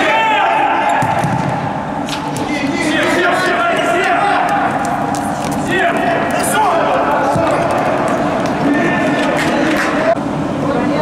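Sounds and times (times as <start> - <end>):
players' voices: 0.0 - 11.0
ball thudding on court: 1.0 - 2.5.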